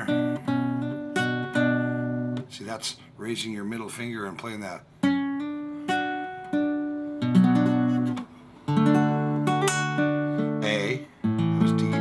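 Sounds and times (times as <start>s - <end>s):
fingerpicked acoustic guitar chords: 0.0s - 2.6s, 4.8s - 12.0s.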